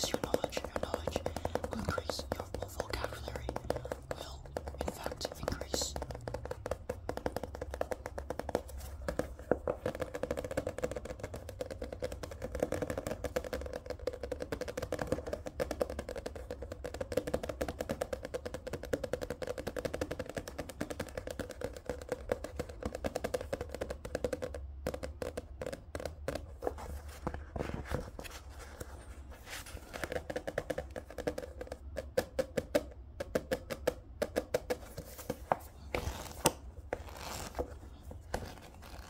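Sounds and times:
fingernails tapping on a book: 0:00.0 - 0:39.0.

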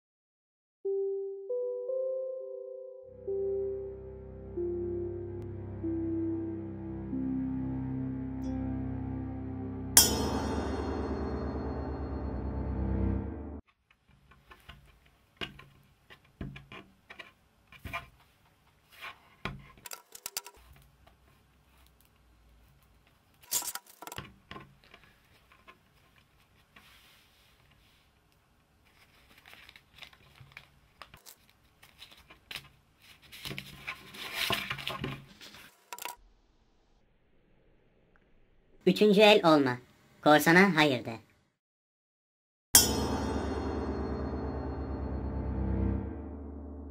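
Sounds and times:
music: 0:00.8 - 0:13.6, 0:42.8 - 0:46.9.

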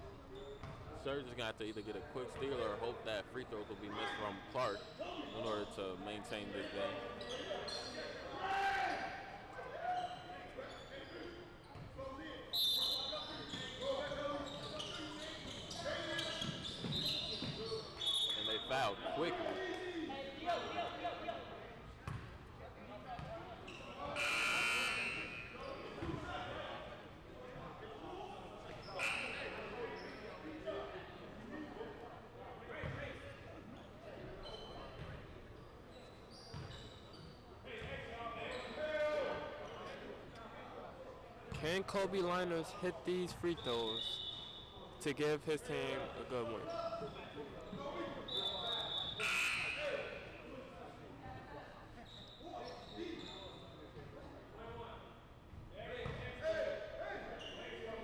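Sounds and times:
shoe squeaks: 0:07.0 - 0:08.2, 0:12.5 - 0:19.0, 0:23.6 - 0:26.1, 0:33.8 - 0:37.4, 0:43.5 - 0:44.8, 0:47.6 - 0:50.3, 0:52.0 - 0:53.8, 0:57.4 - 0:57.9.

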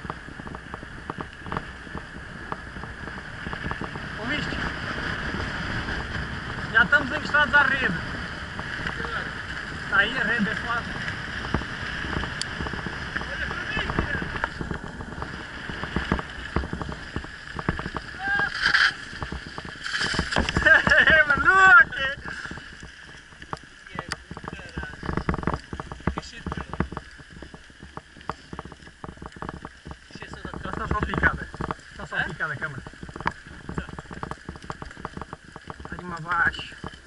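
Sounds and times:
bike rattling over bumps: 0:00.0 - 0:37.0
bike tyres on gravel: 0:00.0 - 0:37.0
wind on microphone: 0:00.0 - 0:37.0.

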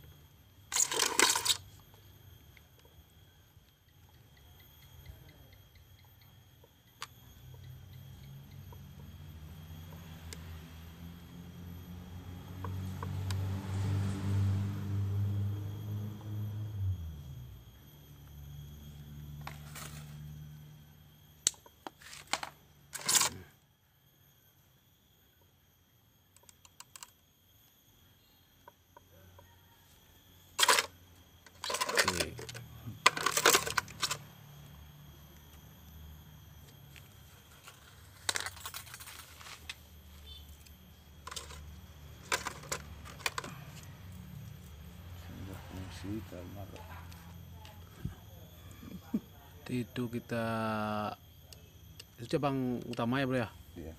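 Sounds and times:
wire clicking and scraping: 0:31.5 - 0:34.3.

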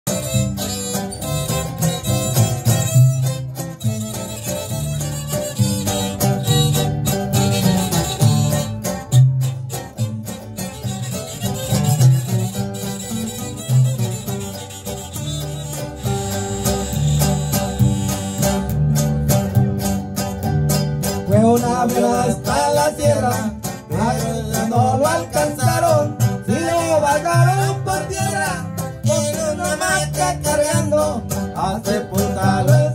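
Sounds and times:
violin lead: 0:00.1 - 0:21.3
plucked double bass: 0:00.1 - 0:32.9
strummed acoustic guitars: 0:00.1 - 0:32.9.

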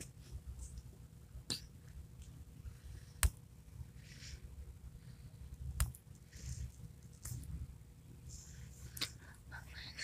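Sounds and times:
faint whispering: 0:08.2 - 0:10.0.

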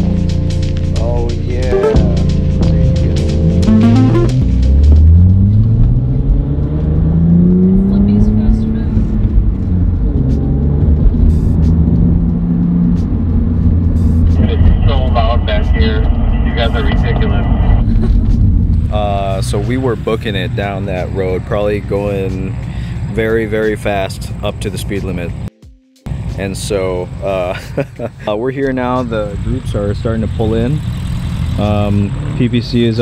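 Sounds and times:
car engine accelerating: 0:00.0 - 0:24.0, 0:29.0 - 0:33.0.

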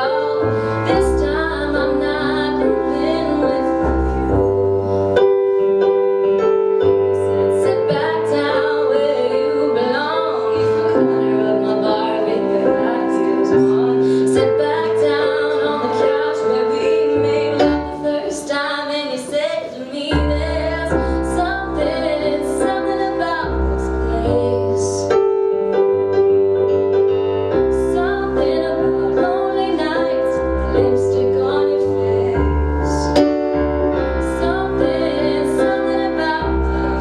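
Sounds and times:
woman singing: 0:00.0 - 0:04.7, 0:06.3 - 0:26.4, 0:27.6 - 0:37.0
sustained electric piano chords: 0:00.0 - 0:37.0.

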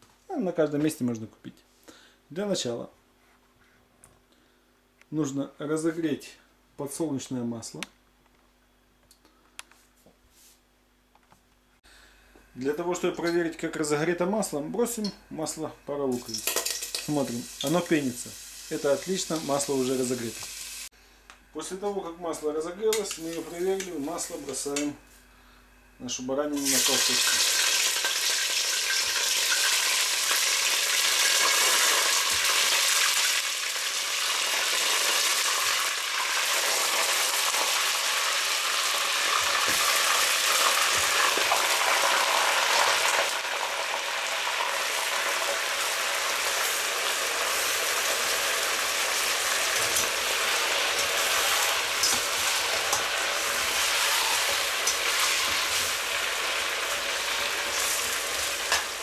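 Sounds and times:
meat sizzling in hot oil: 0:16.1 - 0:20.9, 0:26.6 - 0:59.0.

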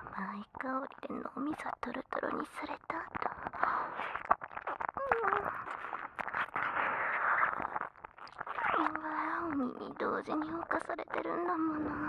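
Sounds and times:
woman whispering: 0:00.0 - 0:04.2, 0:05.0 - 0:07.0, 0:08.7 - 0:12.0.

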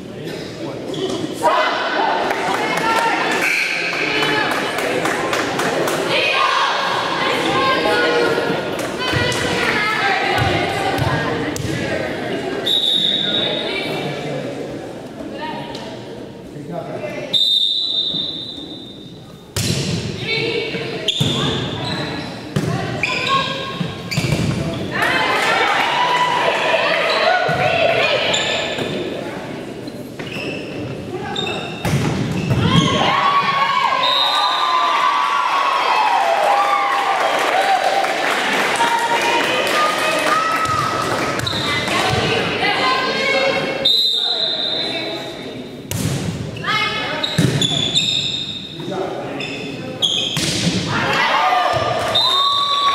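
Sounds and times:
referee's whistle: 0:12.6 - 0:13.6, 0:17.3 - 0:19.1, 0:33.9 - 0:34.9, 0:43.8 - 0:45.0, 0:52.1 - 0:52.9
players and spectators cheering: 0:24.9 - 0:28.1, 0:32.6 - 0:42.4, 0:50.9 - 0:52.9
volleyball struck with thumps: 0:47.3 - 0:47.8.

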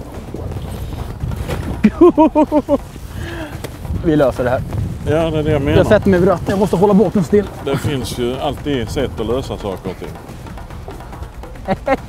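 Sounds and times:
low rumble of wind: 0:00.0 - 0:12.0
person laughing: 0:01.8 - 0:03.7, 0:11.4 - 0:12.0.

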